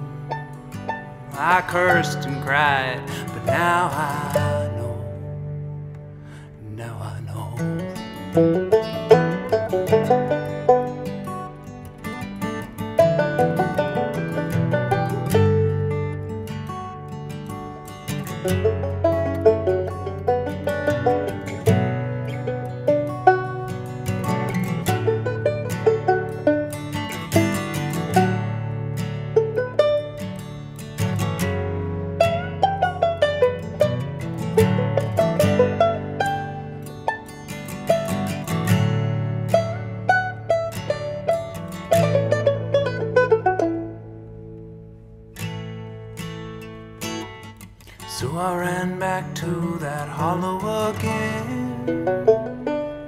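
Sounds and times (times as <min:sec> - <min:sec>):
acoustic guitar chords: 0:00.0 - 0:53.0
banjo fingerpicking: 0:00.0 - 0:53.0.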